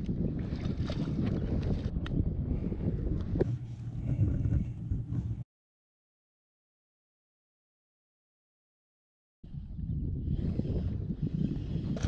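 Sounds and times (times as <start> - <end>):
wind buffeting microphone: 0.0 - 5.4, 9.4 - 12.0.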